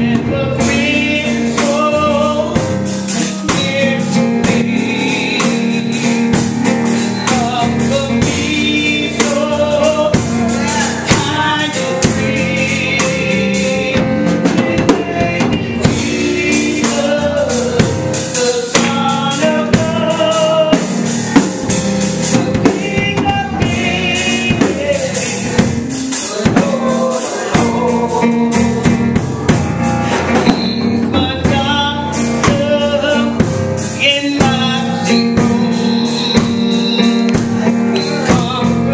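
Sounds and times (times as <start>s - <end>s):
drum kit beat: 0.0s - 38.9s
keyboard: 0.0s - 38.9s
voices singing: 0.0s - 38.9s.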